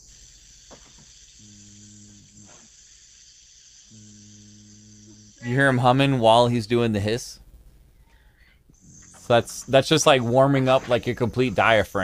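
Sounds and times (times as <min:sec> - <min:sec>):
hiss through the teeth: 0:00.0 - 0:06.4
person humming: 0:03.9 - 0:06.0.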